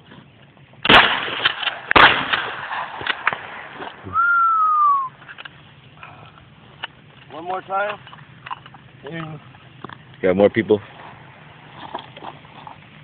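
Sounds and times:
shotgun shots: 0.8 - 3.9
falling whistled note: 4.1 - 5.2.

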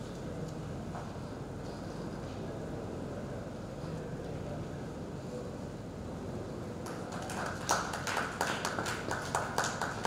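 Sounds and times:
scattered hand clapping: 6.8 - 10.0.

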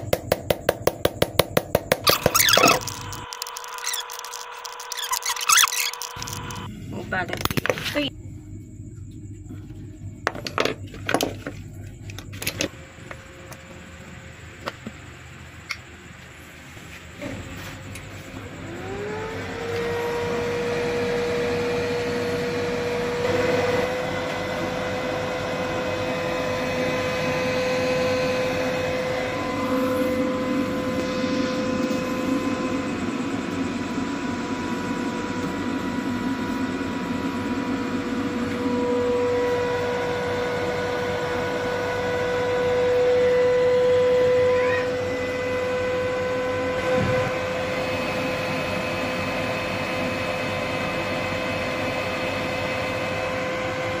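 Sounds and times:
inverter high hum: 0.0 - 54.0.

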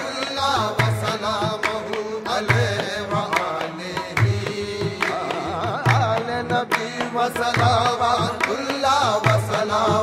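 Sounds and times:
man singing ornamented line: 0.0 - 10.0.

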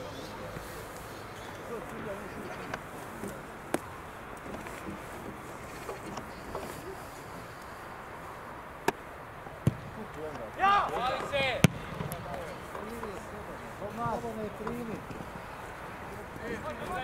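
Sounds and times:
football being kicked: 9.6 - 10.0, 11.2 - 12.5
player shouting: 10.6 - 11.6.

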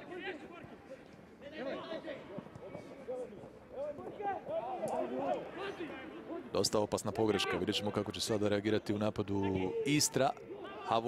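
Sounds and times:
man talking: 6.5 - 11.0.

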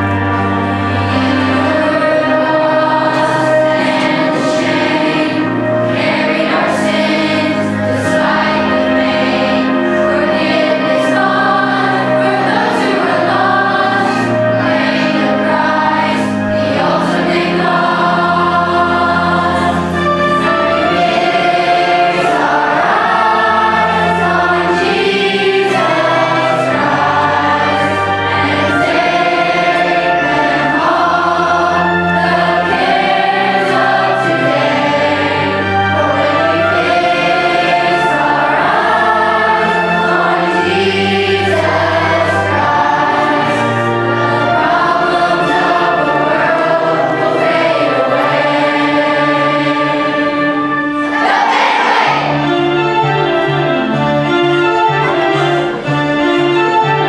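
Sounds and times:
children's choir singing: 0.0 - 57.0.

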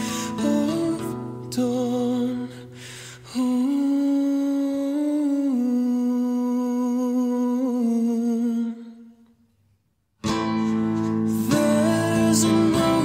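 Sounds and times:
man singing wordless ooh: 0.0 - 9.3, 11.3 - 13.0.

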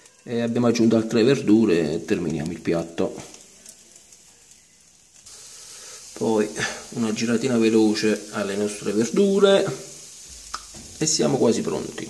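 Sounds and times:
vegetables sizzling on a grill: 0.0 - 12.0
person speaking: 6.2 - 9.9.

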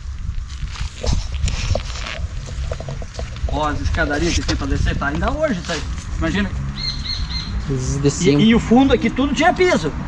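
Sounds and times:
footsteps crunching through leaves: 0.0 - 7.7.

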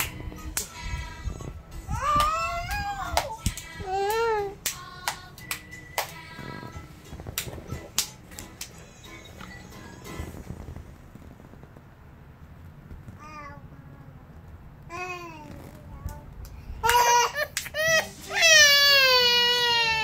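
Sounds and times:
children clapping hands: 0.0 - 0.8, 2.0 - 6.5, 7.3 - 8.9, 16.1 - 17.9
children's song music: 0.0 - 11.0, 14.9 - 20.0.

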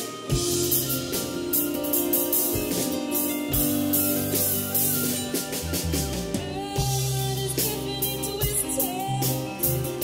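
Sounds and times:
bass: 0.0 - 10.0
drum kit: 0.0 - 10.0.

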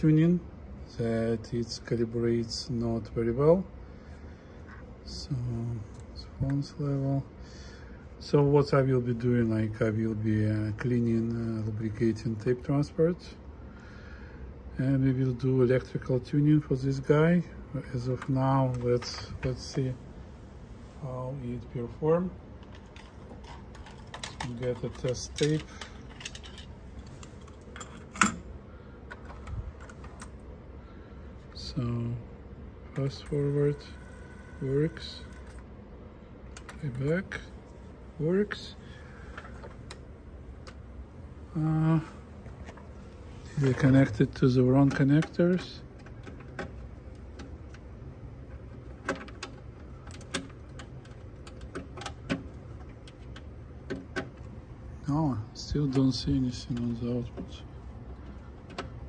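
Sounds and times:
steady low hum: 0.0 - 59.0
cable plugs clicking and knocking: 22.6 - 28.4, 43.6 - 54.6, 55.7 - 59.0
plastic handling clicks: 22.6 - 28.4.

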